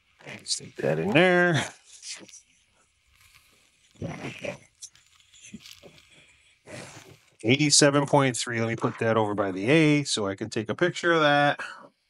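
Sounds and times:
plastic rustling: 3.0 - 7.4.

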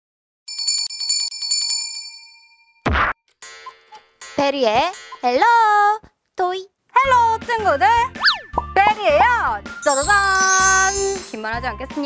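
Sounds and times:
small metal bell trilling: 0.5 - 2.8, 9.8 - 11.6.

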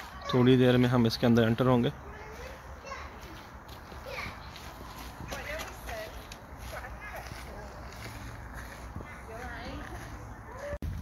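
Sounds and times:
children talking and calling: 0.0 - 10.9.

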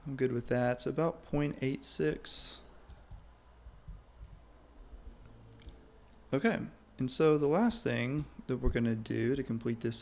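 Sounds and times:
computer mouse clicks: 2.9 - 4.4.

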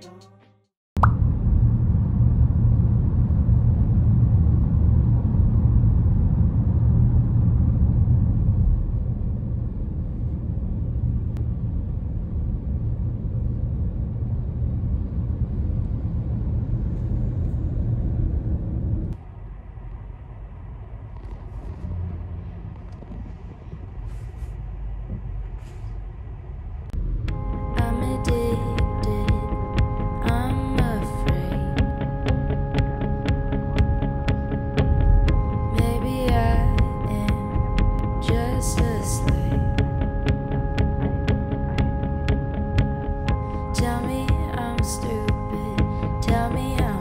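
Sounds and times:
car road and engine rumble: 1.0 - 47.0
cabin hum: 1.2 - 47.0.

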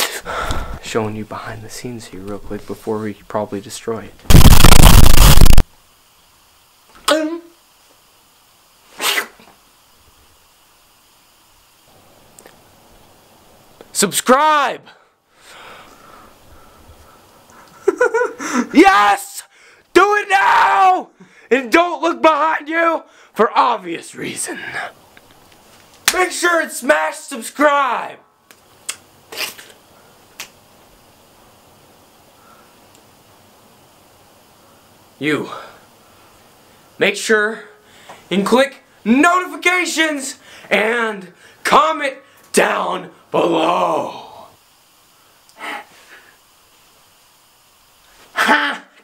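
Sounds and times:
sharp burst of breath: 0.0 - 0.8, 14.8 - 17.7, 18.4 - 18.7, 19.4 - 19.8, 21.2 - 21.5, 45.2 - 46.4
faint room noise: 0.0 - 49.0.

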